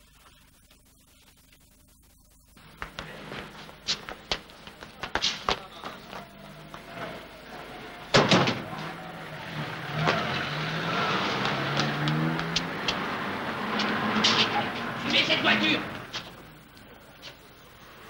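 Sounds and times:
motor vehicle engine running: 0:02.6 - 0:18.0.

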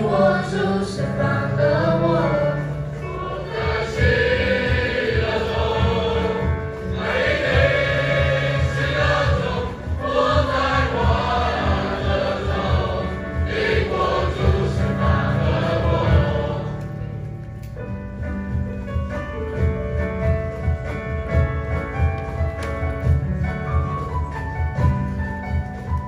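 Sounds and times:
children's choir singing a hymn: 0:00.0 - 0:17.3.

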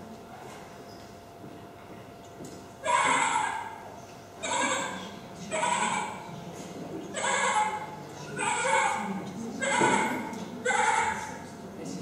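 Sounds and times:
recorded animal calls over loudspeakers: 0:02.8 - 0:06.4, 0:07.0 - 0:11.6.

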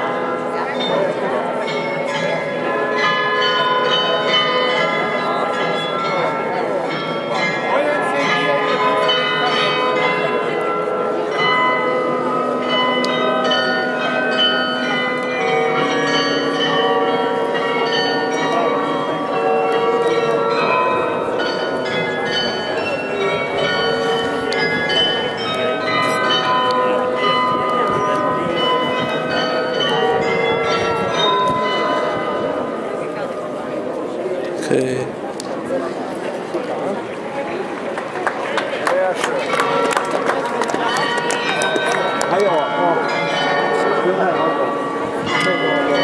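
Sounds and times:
tuned bells playing a melody: 0:00.2 - 0:33.1, 0:40.8 - 0:46.0.

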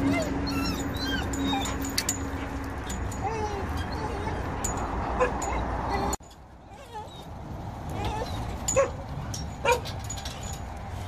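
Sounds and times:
dog yelps: 0:00.0 - 0:02.6, 0:03.2 - 0:07.3, 0:07.9 - 0:09.0, 0:09.6 - 0:09.9
dogs whining and yipping: 0:00.0 - 0:10.7.

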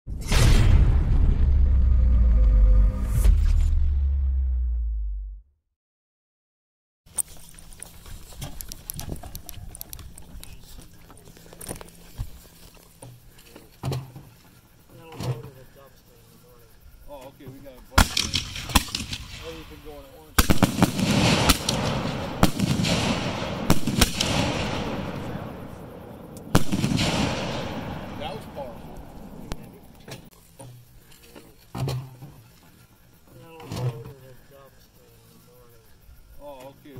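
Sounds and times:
firework launch thump: 0:00.1 - 0:04.2
scattered clicks: 0:07.1 - 0:12.0
firework pops and bang: 0:18.0 - 0:19.6, 0:20.4 - 0:25.2, 0:26.4 - 0:27.9
low voices: 0:33.2 - 0:36.9.

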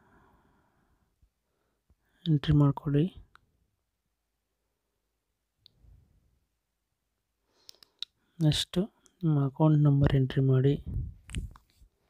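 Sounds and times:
person speaking: 0:02.2 - 0:03.3, 0:08.0 - 0:11.7
faint clicks: 0:07.6 - 0:08.2.

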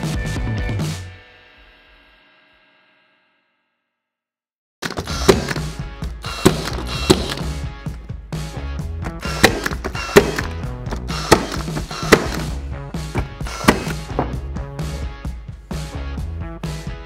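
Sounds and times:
background music: 0:00.0 - 0:02.5, 0:04.8 - 0:17.0
nail gun firing into wood: 0:04.8 - 0:07.6, 0:09.1 - 0:12.6, 0:13.2 - 0:14.3.

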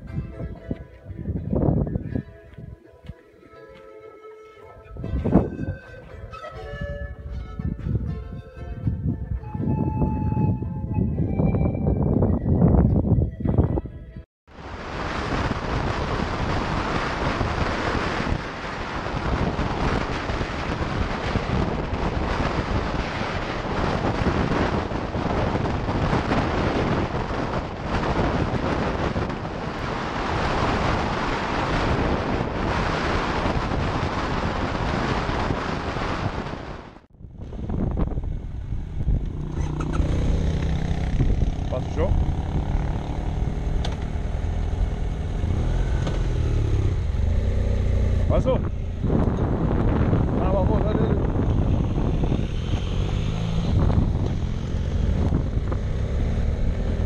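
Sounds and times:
wind roaring over helmet camera: 0:00.0 - 0:02.8, 0:04.8 - 0:57.0
motorcycle engine rumbling: 0:04.9 - 0:57.0.

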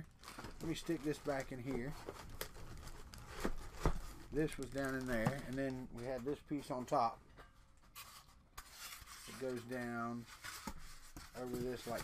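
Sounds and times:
packing material rustling in box: 0:00.1 - 0:06.4.

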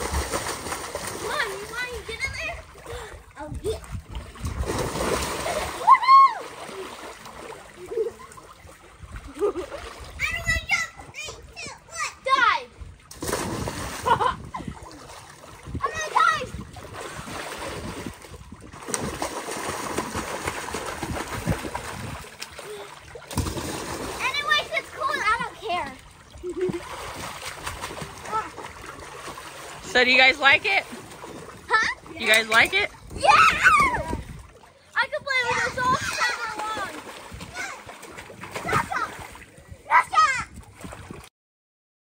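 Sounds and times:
children splashing in pool: 0:00.0 - 0:41.3
children calling out: 0:05.7 - 0:06.6, 0:33.1 - 0:34.2.

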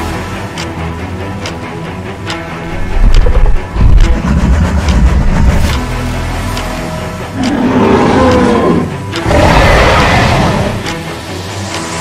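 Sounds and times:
dramatic film music: 0:00.0 - 0:12.0
deep dinosaur growl: 0:07.4 - 0:10.9.

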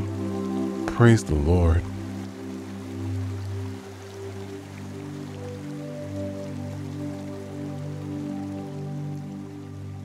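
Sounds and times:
new-age music with sustained chords: 0:00.0 - 0:10.0
soft rain-like patter: 0:00.0 - 0:10.0.

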